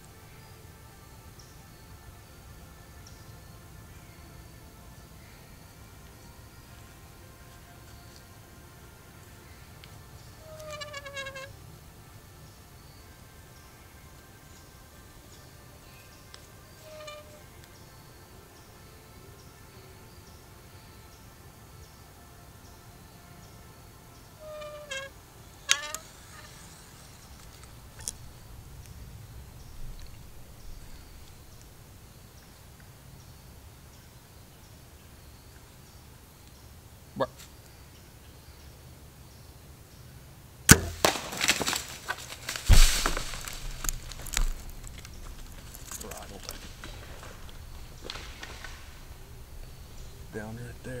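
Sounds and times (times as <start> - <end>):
faint outdoor rumble: 0.0 - 51.0
short pitched calls: 10.4 - 11.5, 16.8 - 17.4, 24.4 - 27.3
bowstring crack: 24.4 - 29.0, 40.7 - 50.3
crashing through dry leaves: 40.7 - 51.0.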